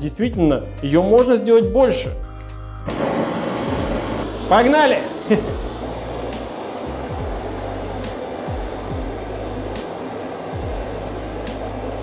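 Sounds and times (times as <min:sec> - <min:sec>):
background music: 0:00.0 - 0:12.0
gas torch flame hissing: 0:02.3 - 0:12.0.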